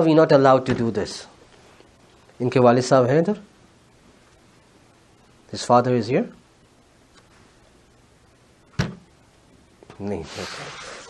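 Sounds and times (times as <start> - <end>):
sharp thump: 8.8 - 9.0.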